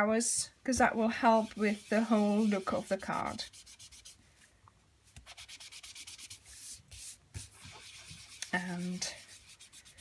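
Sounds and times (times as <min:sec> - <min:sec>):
sponge rubbing on cardstock: 0:01.2 - 0:04.2, 0:05.2 - 0:10.0.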